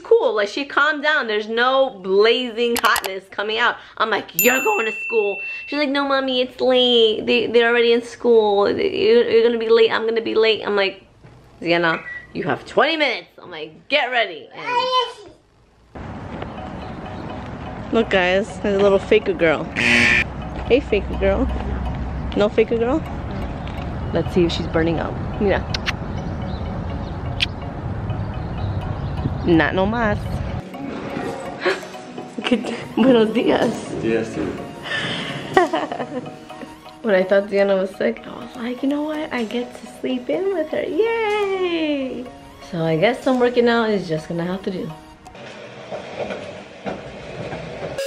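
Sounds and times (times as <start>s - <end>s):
city street rumble: 15.9s - 35.5s, 42.2s - 48.0s.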